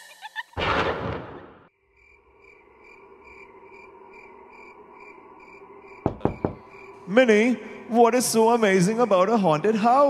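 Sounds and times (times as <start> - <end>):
cricket-like chirps: 1.7 - 7.8
knocks on wooden door: 6.0 - 6.7.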